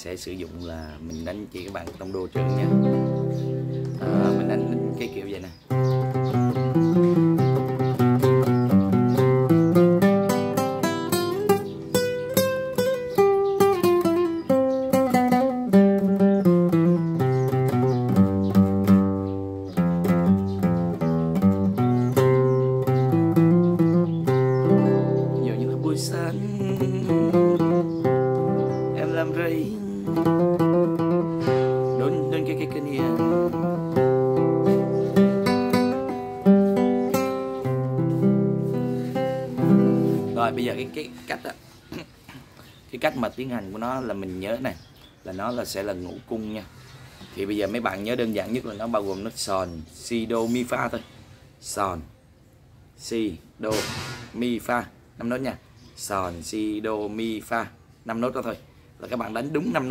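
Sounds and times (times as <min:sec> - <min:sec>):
fingerstyle classical guitar: 0:01.7 - 0:41.6.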